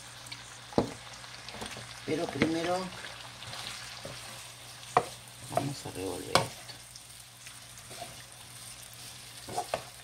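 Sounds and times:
food sizzling in a frying pan: 0:00.0 - 0:10.0
wooden spoon knocking on pan: 0:00.8 - 0:01.0, 0:01.6 - 0:02.6, 0:04.9 - 0:06.6.

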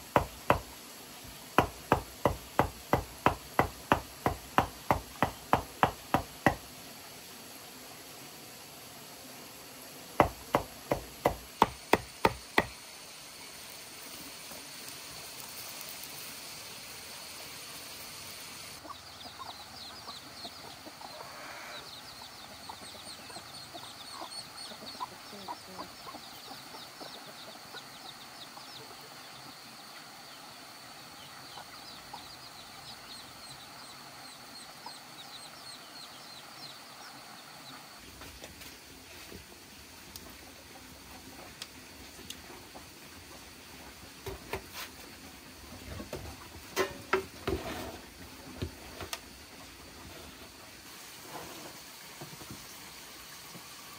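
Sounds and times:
sharp knocks: 0:00.1 - 0:00.7, 0:01.6 - 0:06.6, 0:10.2 - 0:12.8
poultry clucking and peeping: 0:18.7 - 0:53.8.

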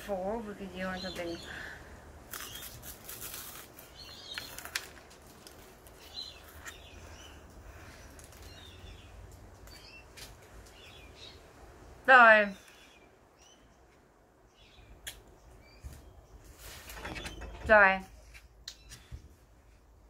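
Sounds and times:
small birds chirping: 0:00.0 - 0:18.0, 0:18.6 - 0:19.6
crunching dry biscuit: 0:02.3 - 0:07.0.

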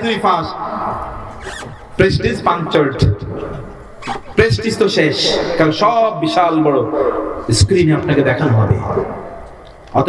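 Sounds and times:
man lecturing into a microphone: 0:04.4 - 0:09.1.

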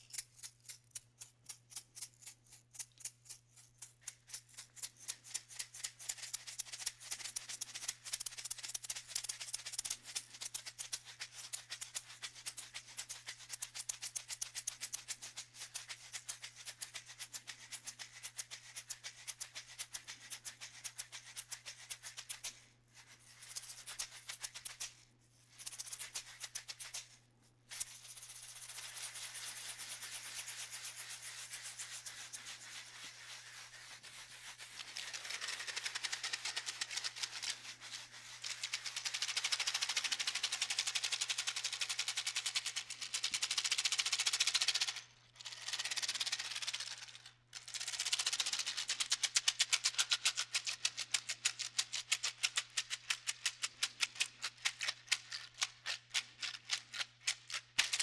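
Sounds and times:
maraca rattling: 0:00.0 - 0:22.5, 0:25.5 - 0:27.1, 0:27.7 - 0:58.0
seed-pod shaker rattling: 0:00.0 - 0:58.0.

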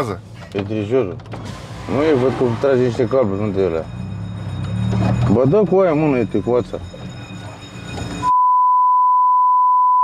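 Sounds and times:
car cabin road noise: 0:00.0 - 0:08.3
high-pitched censor bleep: 0:03.9 - 0:10.0.

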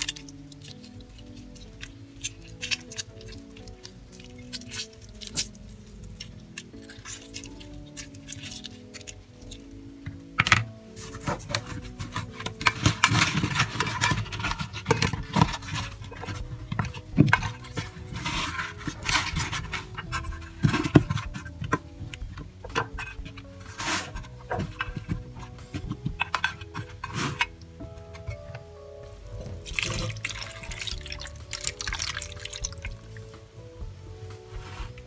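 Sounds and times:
light background music: 0:00.0 - 0:35.0
wet squishing of raw chicken: 0:29.6 - 0:33.2.

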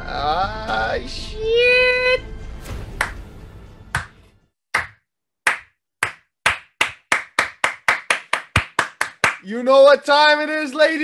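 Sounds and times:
person clapping: 0:04.8 - 0:09.4.

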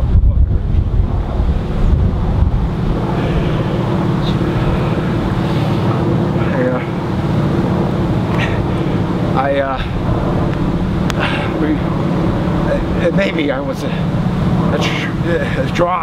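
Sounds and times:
wind buffeting microphone: 0:00.0 - 0:16.0.

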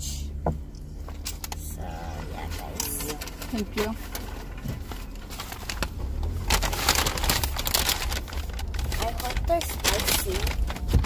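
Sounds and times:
low rumble of car: 0:00.0 - 0:11.0
paper bag crinkling: 0:02.2 - 0:11.0.

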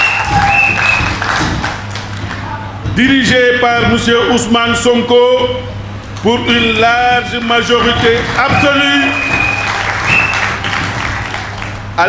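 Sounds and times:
audience applauding: 0:00.0 - 0:02.5, 0:07.6 - 0:12.0.

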